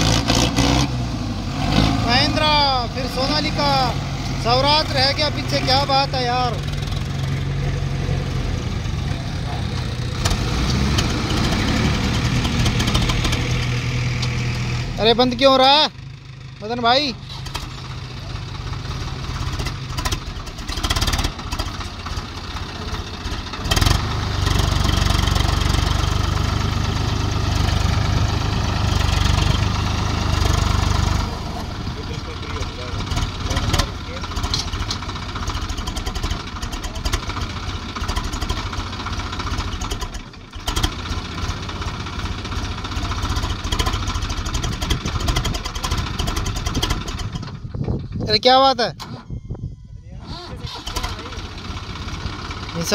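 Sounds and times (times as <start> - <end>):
tractor diesel engine revving: 0.0 - 49.2, 50.2 - 52.9.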